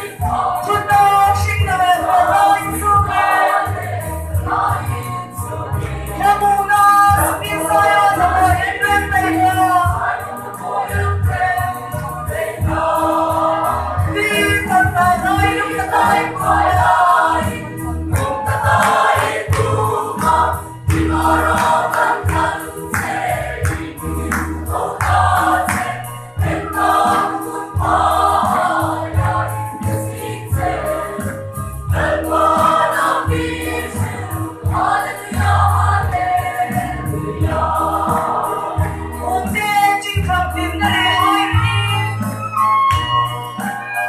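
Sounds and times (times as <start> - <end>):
mixed choir singing: 0.0 - 39.6.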